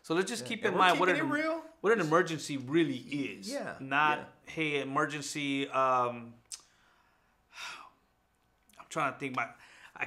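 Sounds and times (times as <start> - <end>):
man speaking: 0.0 - 6.3.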